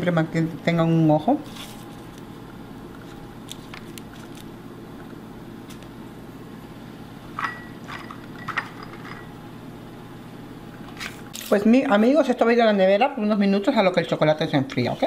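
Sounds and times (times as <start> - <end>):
kitchen background hum: 0.0 - 15.0.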